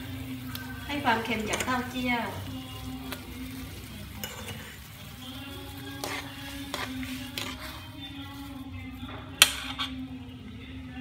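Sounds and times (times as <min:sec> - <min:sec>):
broth boiling in a wok: 0:00.0 - 0:11.0.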